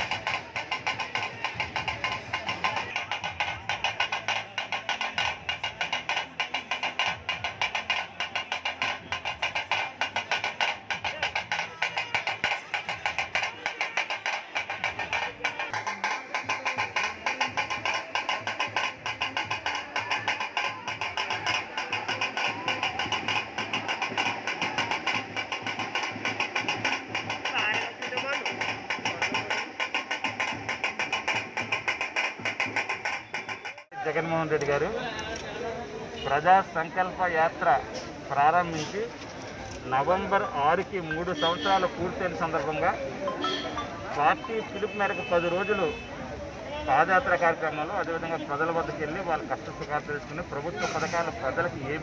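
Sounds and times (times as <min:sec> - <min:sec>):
voices: 0:00.0 - 0:32.2, 0:33.0 - 0:52.0
fast high-pitched drumming: 0:00.0 - 0:35.0, 0:36.2 - 0:52.0.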